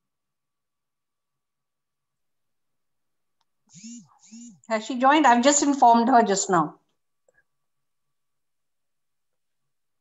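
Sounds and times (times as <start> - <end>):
short vocal sound: 3.7 - 4.6.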